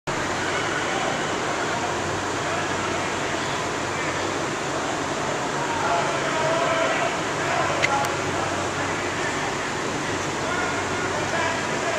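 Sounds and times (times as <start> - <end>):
distant indistinct voices: 0.1 - 11.9.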